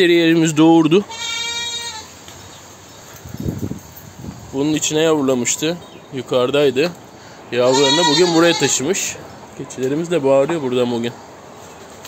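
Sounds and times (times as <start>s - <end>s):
goat bleating: 1.0s - 2.1s, 7.6s - 9.1s.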